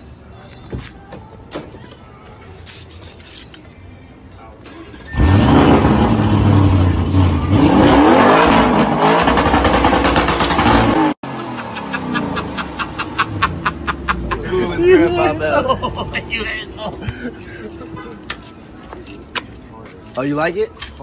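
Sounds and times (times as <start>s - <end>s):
car engine starting and revving: 4.6s - 14.3s.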